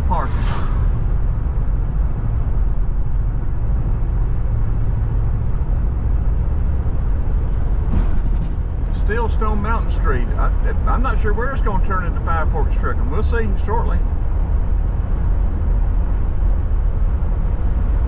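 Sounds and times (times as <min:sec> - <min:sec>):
car engine rumble: 0:00.0 - 0:18.0
tyres on the road: 0:00.0 - 0:18.0.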